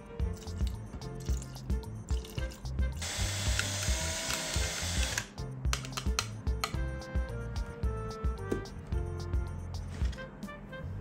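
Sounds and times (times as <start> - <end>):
cordless drill mixing: 3.0 - 5.3.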